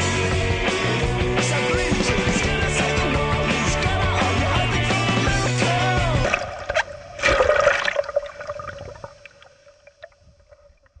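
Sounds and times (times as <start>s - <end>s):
loud water splash: 6.2s - 9.2s.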